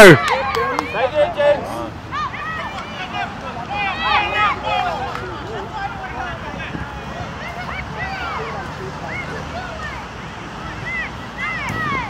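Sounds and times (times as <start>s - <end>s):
crowd shouting and calling: 0.0s - 12.0s.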